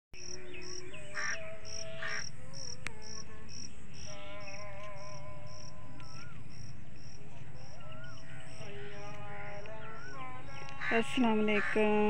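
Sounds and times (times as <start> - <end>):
cricket chirping: 0.2 - 12.0.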